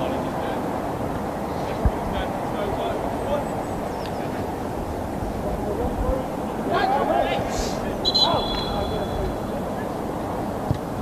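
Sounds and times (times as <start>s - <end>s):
outdoor noise: 0.0s - 11.0s
players shouting: 5.7s - 10.4s
referee's whistle: 8.0s - 9.5s.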